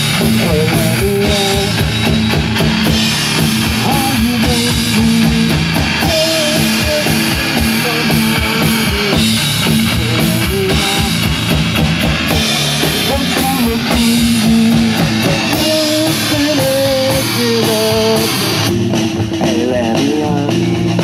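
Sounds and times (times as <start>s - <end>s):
drum kit: 0.0s - 21.0s
electric guitar: 0.0s - 21.0s.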